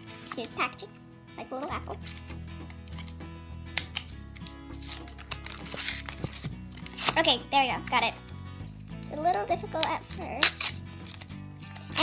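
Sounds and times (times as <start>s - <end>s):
background music: 0.0s - 12.0s
plastic packaging crinkling: 3.9s - 7.2s.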